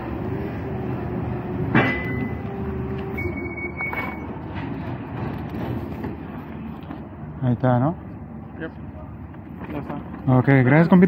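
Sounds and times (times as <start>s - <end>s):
forklift engine drone: 0.0s - 10.2s
metallic clank: 1.7s - 2.5s.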